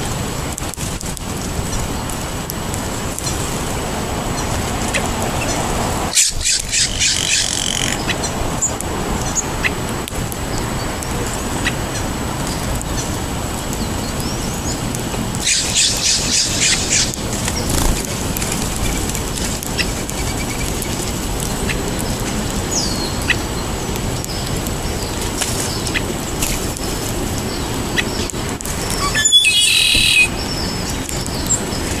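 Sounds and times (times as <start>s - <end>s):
harsh bird calls: 4.3s - 8.4s, 13.8s - 32.0s.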